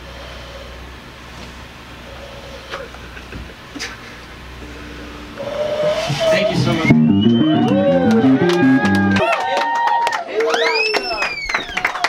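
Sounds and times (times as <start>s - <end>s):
band playing low notes: 4.6s - 9.3s
people whooping and shouting: 5.8s - 12.0s.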